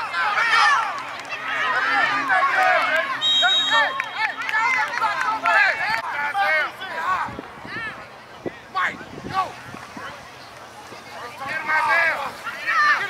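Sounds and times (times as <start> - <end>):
referee's whistle: 3.2 - 4.6
high voices shouting and yelling: 11.1 - 13.0.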